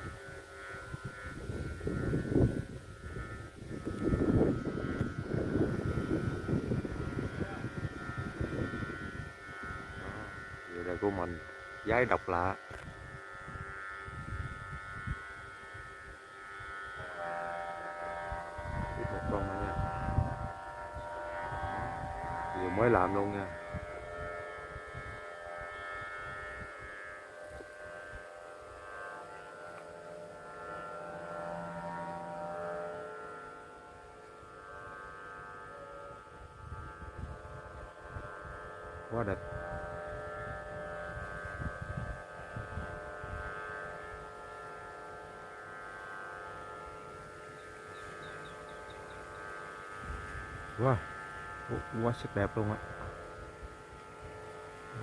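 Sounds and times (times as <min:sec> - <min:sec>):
steady humming tones: 0:00.0 - 0:55.0
voice: 0:19.0 - 0:19.8, 0:22.6 - 0:23.5, 0:39.1 - 0:39.4, 0:50.8 - 0:51.0, 0:51.7 - 0:52.8.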